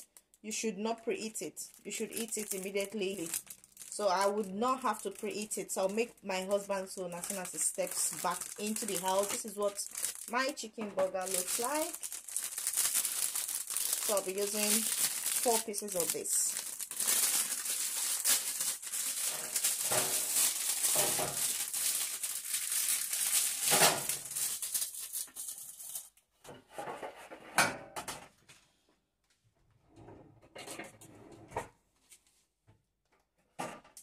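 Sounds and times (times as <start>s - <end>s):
plastic packaging crinkling: 1.6s - 26.2s.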